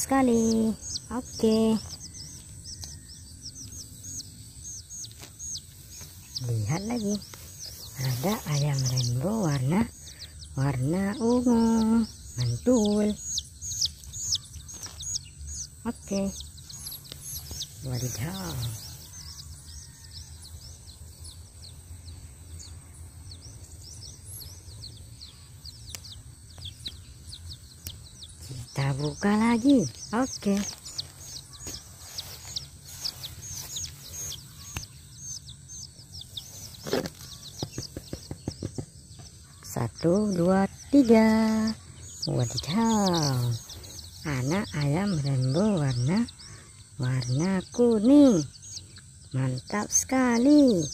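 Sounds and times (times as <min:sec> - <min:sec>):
chicks peeping: 0:00.0 - 0:50.9
small bird chirping: 0:00.0 - 0:50.9.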